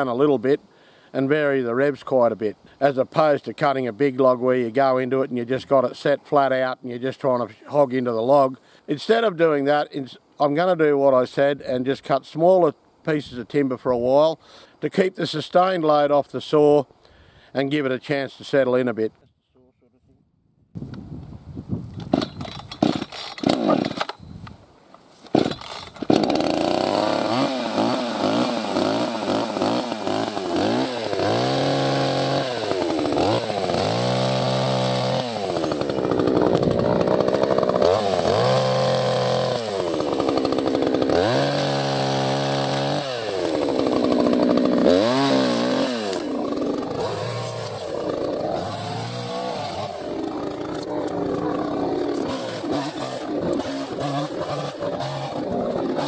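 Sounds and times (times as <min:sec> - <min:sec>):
chainsaw cutting sticks: 0:22.0 - 0:24.2, 0:25.2 - 0:56.0.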